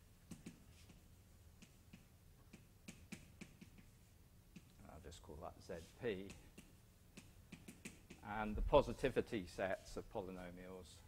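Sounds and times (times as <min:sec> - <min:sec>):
faint taps of writing on a board: 0:00.2 - 0:04.8, 0:06.0 - 0:08.3.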